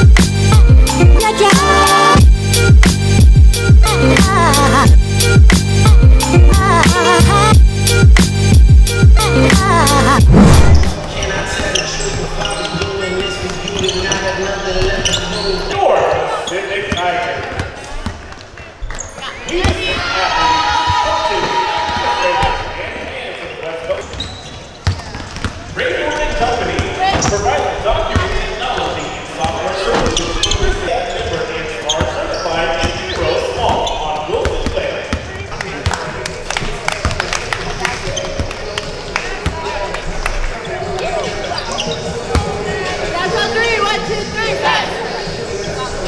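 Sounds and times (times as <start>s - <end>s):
basketballs bouncing on gym floor: 24.1s - 25.8s.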